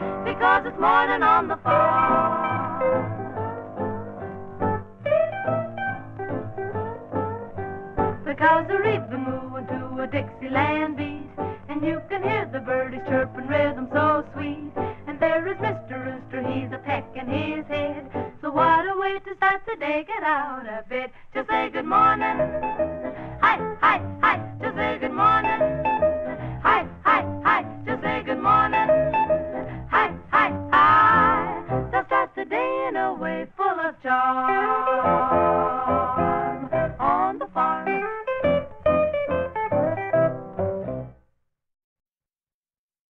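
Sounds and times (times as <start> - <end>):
female trio singing in harmony: 0.0 - 3.1, 8.3 - 22.8, 23.4 - 25.9, 26.5 - 29.2, 29.8 - 37.9
yodel-like vocal passages: 0.0 - 3.2, 21.1 - 38.0
plucked guitar run: 37.6 - 41.2.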